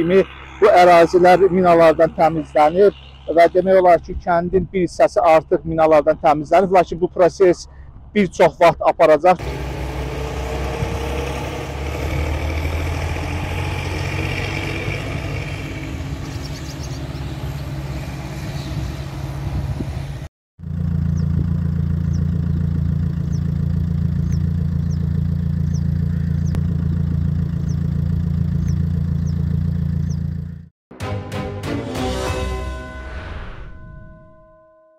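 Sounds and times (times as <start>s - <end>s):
low engine drone: 0.0s - 6.2s, 9.4s - 34.4s.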